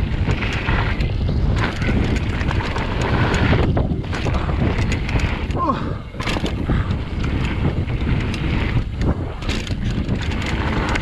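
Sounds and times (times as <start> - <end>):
bike clicking and rattling: 0.0 - 11.0
bike tyres rumbling over gravel: 0.0 - 11.0
wind buffeting microphone: 0.0 - 11.0.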